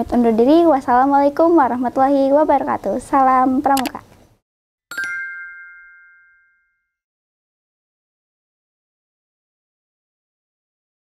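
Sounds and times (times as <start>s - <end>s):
bell-like chime ringing: 4.9s - 7.0s.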